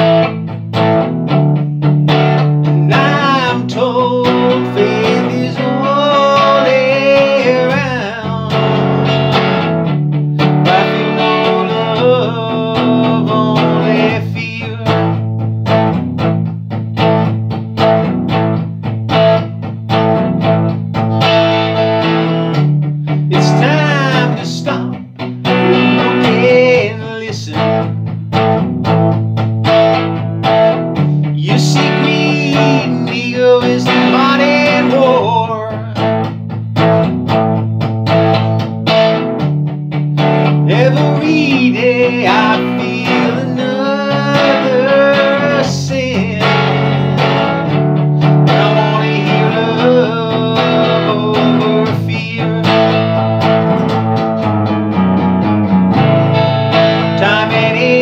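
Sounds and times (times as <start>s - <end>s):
electric guitar strumming: 0.0s - 58.0s
man singing: 2.6s - 9.5s, 10.6s - 15.3s, 21.6s - 28.0s, 31.2s - 36.3s, 40.6s - 53.3s, 57.0s - 58.0s.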